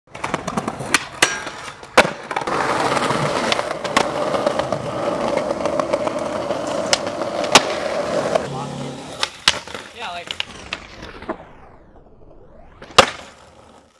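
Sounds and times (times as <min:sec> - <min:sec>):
skateboard clacks: 0:00.1 - 0:10.8
skateboard trucks grinding on stone: 0:00.1 - 0:11.4, 0:12.8 - 0:13.9.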